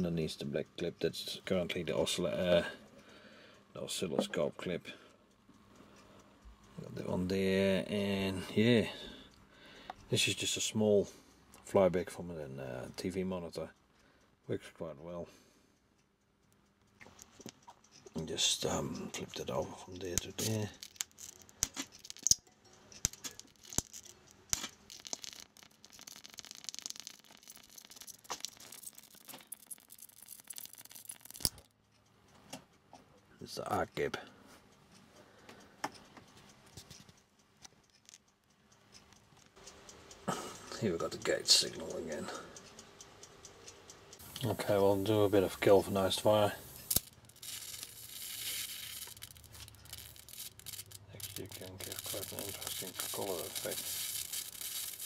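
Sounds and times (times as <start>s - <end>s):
electric arc crackling: 19.5s - 31.7s, 44.2s - 55.0s
faint high sizzle: 21.4s - 31.4s, 39.7s - 42.6s, 44.2s - 55.0s.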